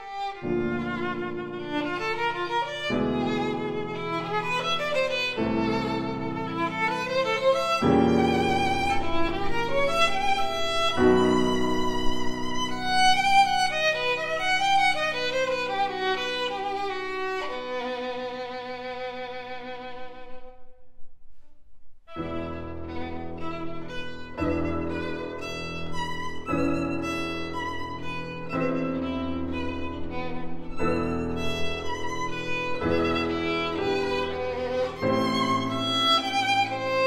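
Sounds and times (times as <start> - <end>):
piano chords: 0.0 - 18.5, 22.1 - 37.0
violin with vibrato: 0.0 - 20.6, 22.1 - 37.0.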